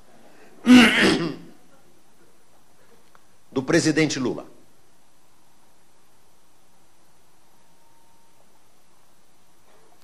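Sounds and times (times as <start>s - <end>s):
man clearing his throat: 0.6s - 1.5s.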